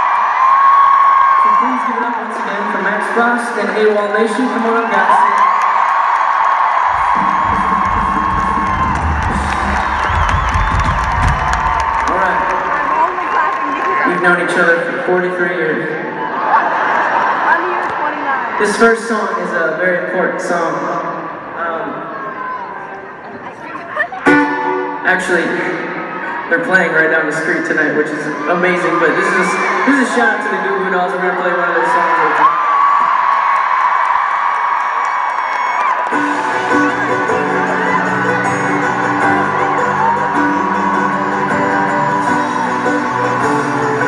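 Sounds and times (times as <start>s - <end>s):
crowd cheering and screaming: 0.0s - 44.0s.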